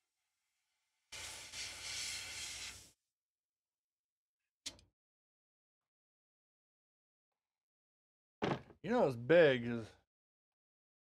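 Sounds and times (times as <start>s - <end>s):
hissing air burst: 1.2s - 2.9s.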